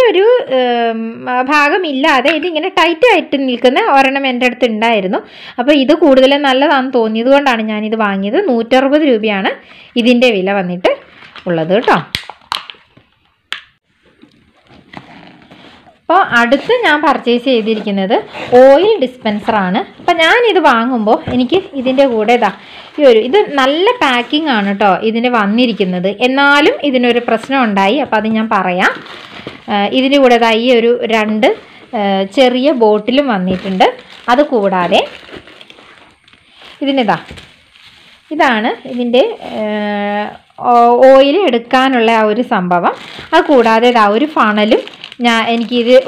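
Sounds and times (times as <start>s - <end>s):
plastic packaging clicks: 11.3s - 13.7s
foam packaging crinkling: 13.9s - 40.4s, 41.4s - 46.0s
person speaking: 15.9s - 35.5s, 38.3s - 46.0s.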